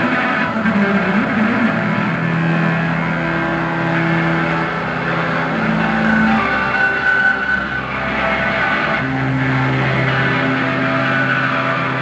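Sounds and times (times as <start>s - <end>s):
live band with distorted guitar: 0.0s - 12.0s.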